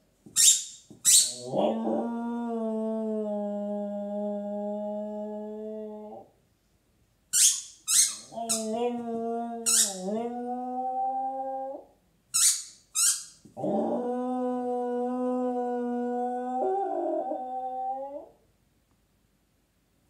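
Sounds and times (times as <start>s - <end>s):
dog howling: 1.2s - 6.3s, 8.2s - 11.9s, 13.6s - 18.4s.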